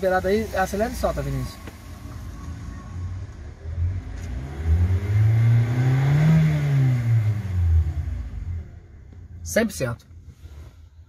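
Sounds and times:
car engine idling and revving: 0:00.0 - 0:11.0.

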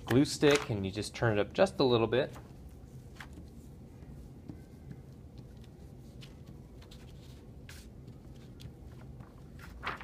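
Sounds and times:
paper rustling: 0:02.2 - 0:10.0
paper crinkle: 0:05.5 - 0:10.0.

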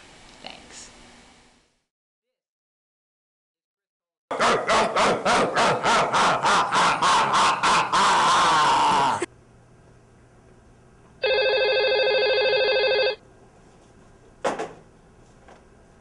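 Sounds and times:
person crying out: 0:05.4 - 0:09.3
telephone electronic ring: 0:11.2 - 0:13.2.

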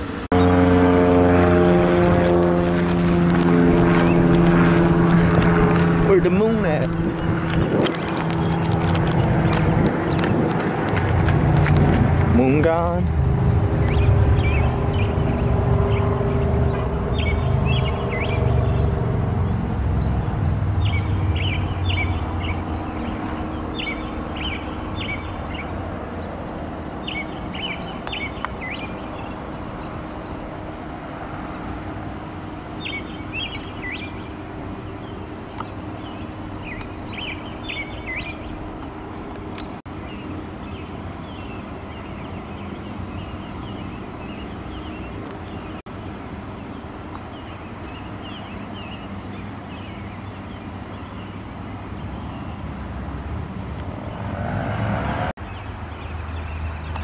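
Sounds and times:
constant hum: 0:00.0 - 0:57.0
low rumble: 0:13.0 - 0:26.7
high bird chirps: 0:13.8 - 0:25.8, 0:26.8 - 0:30.5, 0:32.8 - 0:38.7.

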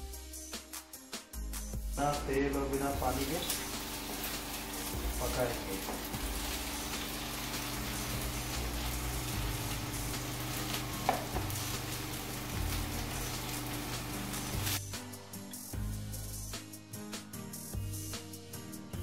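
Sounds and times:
background music: 0:00.0 - 0:19.0
greens sizzling in a pan: 0:02.7 - 0:14.8.

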